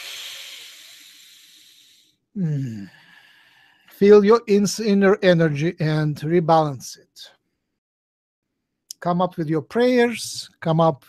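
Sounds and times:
man exhaling breathily: 0.0 - 3.9.

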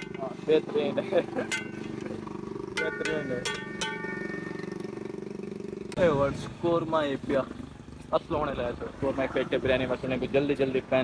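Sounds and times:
small engine idling: 0.0 - 8.7.

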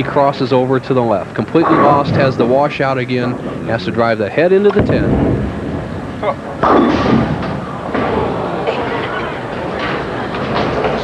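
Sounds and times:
bowling pins crashing: 1.6 - 4.1, 4.7 - 11.0
crowd murmur: 4.9 - 11.0.

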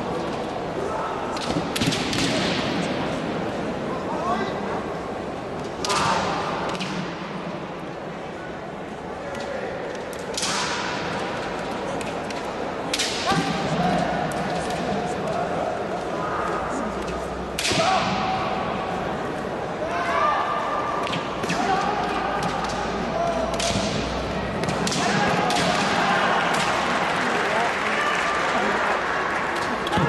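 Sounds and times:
bamboo swords striking: 10.2 - 11.2, 17.6 - 18.4, 21.0 - 26.8.

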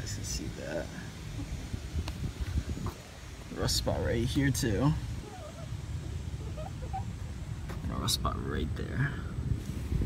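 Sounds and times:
low rumble on microphone: 0.0 - 10.0.

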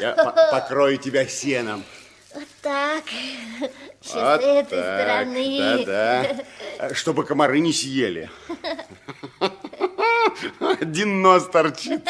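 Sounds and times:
man speaking: 0.0 - 2.1, 4.0 - 8.5, 10.4 - 12.0.

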